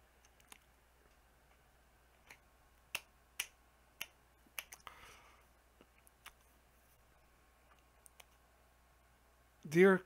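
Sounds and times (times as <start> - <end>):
soft rustle: 5.3 - 7.9.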